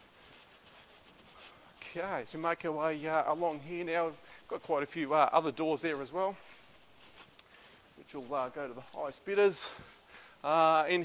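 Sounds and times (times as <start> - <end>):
handheld camera rubbing and scuffing: 0.0 - 9.9
person speaking: 1.4 - 11.0.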